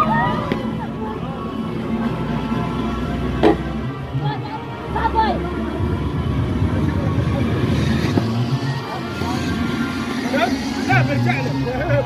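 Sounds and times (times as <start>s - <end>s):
loud fair music: 0.0s - 12.0s
voices: 0.0s - 12.0s.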